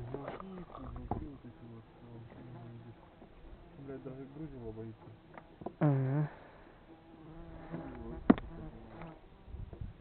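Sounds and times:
insect buzzing: 0:00.0 - 0:10.0.

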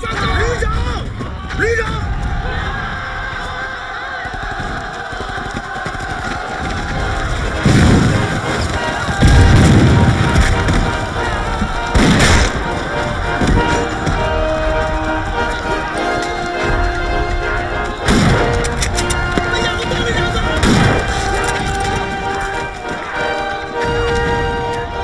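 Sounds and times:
dramatic film score: 0:00.0 - 0:25.0
gunfire: 0:04.2 - 0:15.1, 0:18.0 - 0:24.6
loud explosions: 0:04.4 - 0:16.0, 0:16.6 - 0:25.0.

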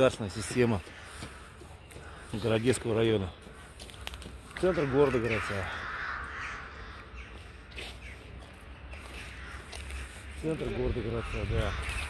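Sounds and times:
birds calling: 0:00.0 - 0:12.0
harsh rasping bird call: 0:04.5 - 0:08.3.

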